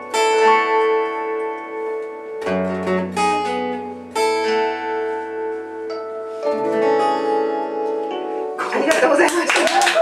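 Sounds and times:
acoustic guitar chord ringing: 0.0s - 8.7s
people clapping: 8.6s - 10.0s.

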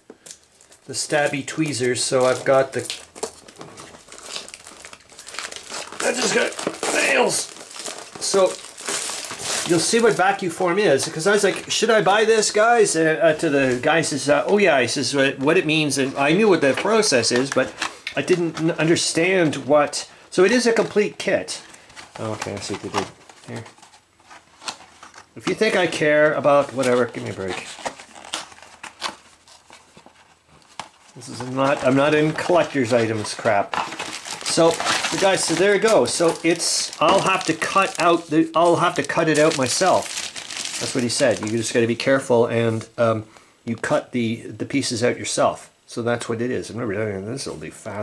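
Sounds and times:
plastic wrapping crinkling and tearing: 0.2s - 12.7s, 21.5s - 42.2s
cardboard rustling: 1.1s - 11.8s, 20.6s - 41.8s.

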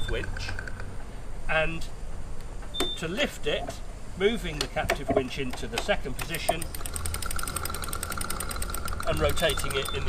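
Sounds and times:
winch ratchet clicking: 5.8s - 10.0s
steady whine: 6.4s - 10.0s.

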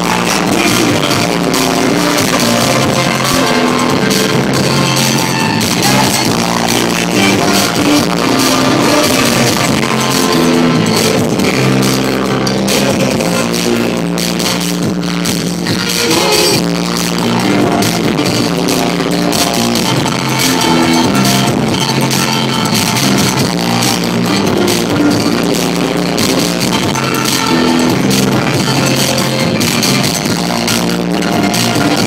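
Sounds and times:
drum kit: 0.0s - 32.0s
electric guitars: 0.0s - 32.0s.

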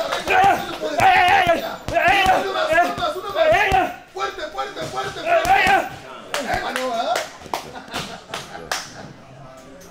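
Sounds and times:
boxing gloves punching heavy bag: 0.2s - 3.9s.

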